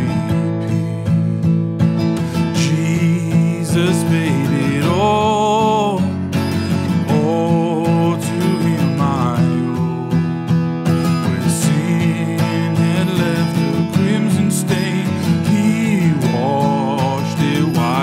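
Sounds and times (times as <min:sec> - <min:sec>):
man singing a hymn: 0:00.0 - 0:00.6, 0:02.4 - 0:06.3, 0:06.9 - 0:10.2, 0:11.3 - 0:18.0
strummed acoustic guitar: 0:00.0 - 0:18.0.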